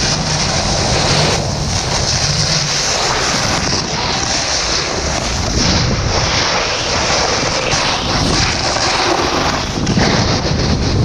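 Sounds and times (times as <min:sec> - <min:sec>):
snowboard carving on icy snow: 0:00.0 - 0:11.0
wind on microphone: 0:00.0 - 0:11.0.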